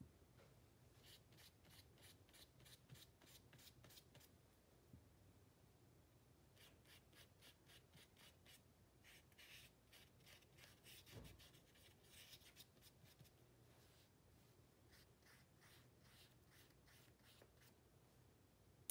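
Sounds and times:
brush strokes on paper: 0:06.6 - 0:17.8.

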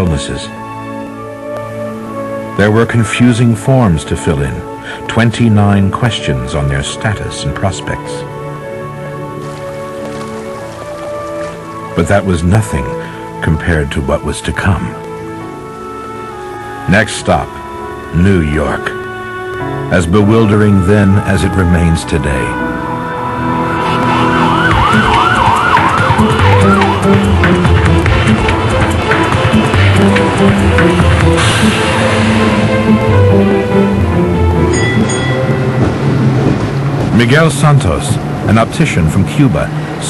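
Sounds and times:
soft music of held chords: 0:00.0 - 0:40.0
emergency siren yelping: 0:22.4 - 0:31.4.

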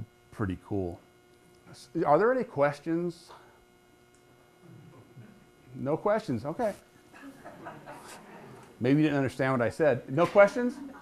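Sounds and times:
man speaking: 0:00.0 - 0:01.0, 0:01.7 - 0:03.4, 0:05.7 - 0:06.8, 0:08.8 - 0:10.9.

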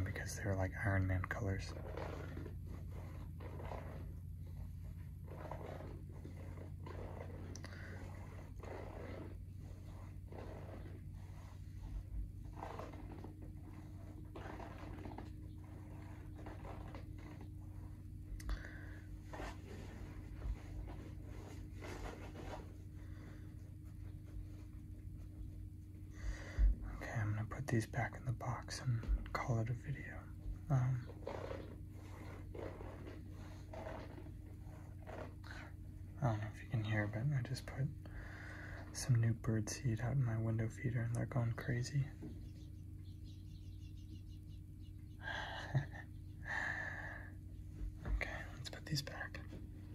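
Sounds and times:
steady low hum: 0:00.0 - 0:49.9
fingernails scratching rubber sole: 0:01.7 - 0:18.1, 0:18.7 - 0:22.9, 0:30.7 - 0:35.7.

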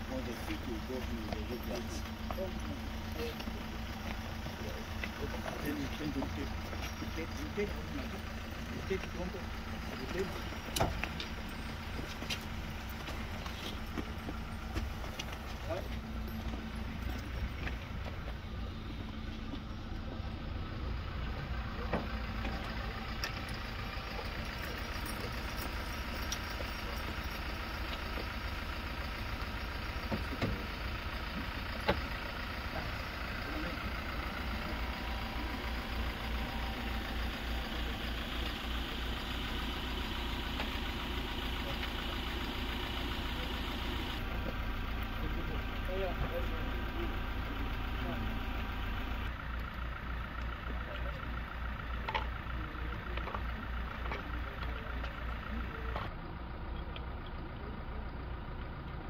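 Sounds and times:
voices in background: 0:00.0 - 0:20.4, 0:32.2 - 0:58.3
engine idling: 0:00.0 - 0:59.0.

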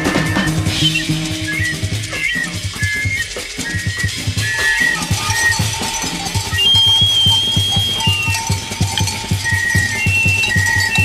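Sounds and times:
high whistle-like tones: 0:00.0 - 0:11.0.

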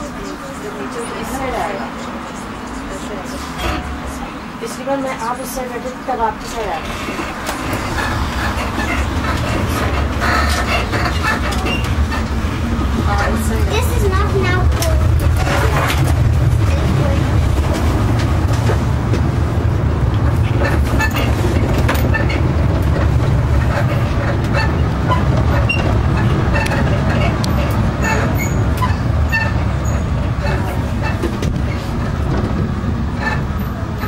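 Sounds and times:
bus engine and road rumble: 0:00.0 - 0:34.0
rattles and squeaks from bus body: 0:02.9 - 0:34.0.

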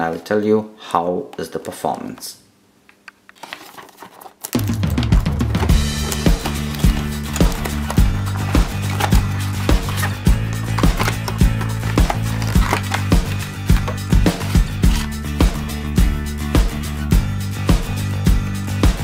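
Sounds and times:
background music with steady beat: 0:04.6 - 0:19.0.

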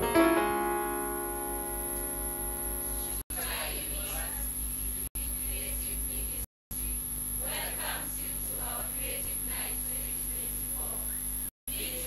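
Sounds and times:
electronic keyboard chord: 0:00.0 - 0:03.2.

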